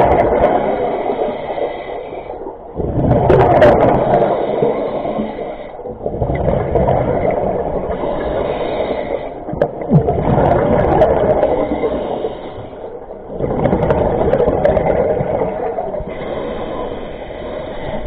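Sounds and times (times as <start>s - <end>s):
regulator bubbles gurgling underwater: 0.0s - 18.0s.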